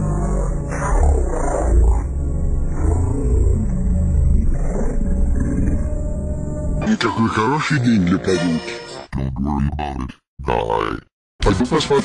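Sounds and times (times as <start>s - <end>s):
distorted deep rumble with wavering tones: 0.0s - 6.8s
music: 0.0s - 9.3s.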